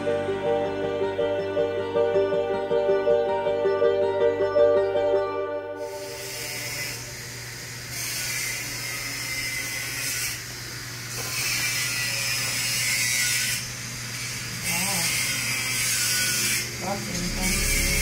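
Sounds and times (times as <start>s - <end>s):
machinery low hum: 16.8s - 18.0s.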